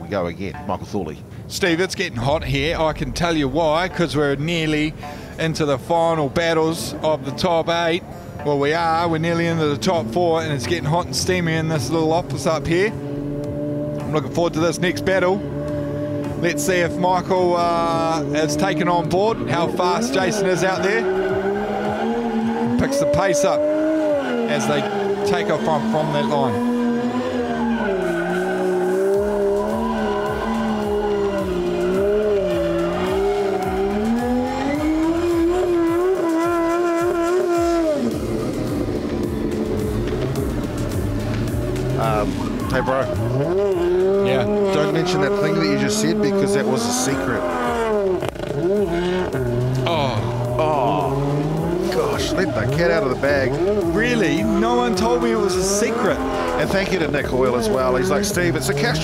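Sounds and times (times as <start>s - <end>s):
high-revving car engines: 2.2s - 59.0s
tyres screeching: 18.0s - 59.0s.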